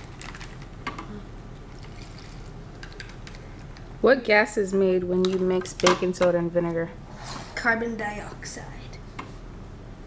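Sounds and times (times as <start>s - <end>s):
liquid trickling into plastic bag: 0.0s - 0.7s, 1.7s - 3.7s.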